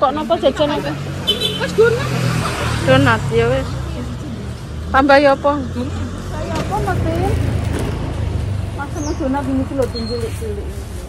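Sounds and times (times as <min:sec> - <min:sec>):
people talking: 0:00.0 - 0:07.4, 0:08.8 - 0:10.8
road traffic rumble: 0:00.0 - 0:11.0.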